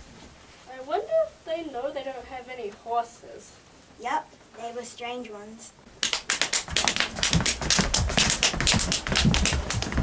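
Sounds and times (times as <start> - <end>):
hoofbeats clip-clop: 6.7 - 10.0
low thuds: 6.7 - 10.0.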